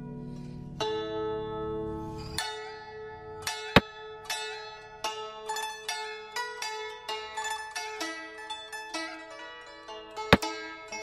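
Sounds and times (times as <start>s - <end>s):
plucked zither music: 0.0s - 11.0s.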